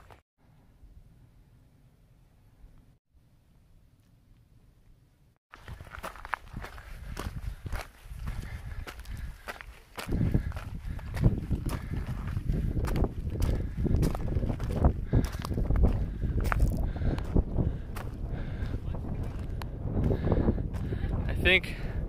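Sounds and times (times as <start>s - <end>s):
footsteps on gravel: 0.0s - 0.2s, 5.5s - 21.0s.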